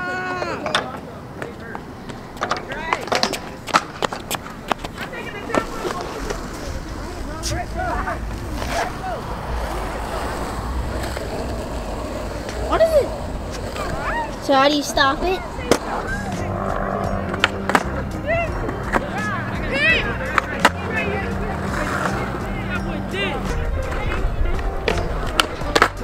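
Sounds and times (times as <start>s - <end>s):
skateboard wheels rolling on concrete: 0.0s - 26.0s
voices talking: 0.0s - 26.0s
skateboards clacking on ground: 0.1s - 26.0s.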